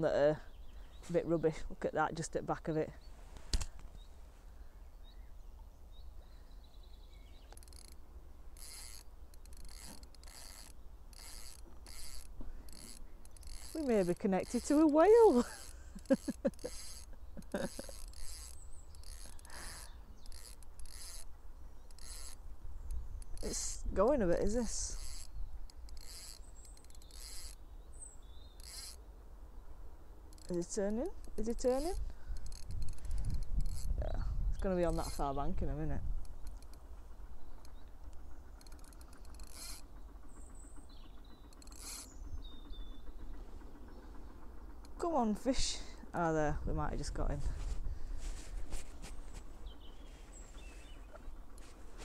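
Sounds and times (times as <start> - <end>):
low wind rumble: 0.4 - 52.0
fishing reel drag buzzing: 7.4 - 29.1, 30.2 - 37.9, 38.5 - 40.0, 41.3 - 42.3
wind rumble on microphone: 31.1 - 38.4, 46.4 - 52.0
faint bird chirps: 49.6 - 52.0.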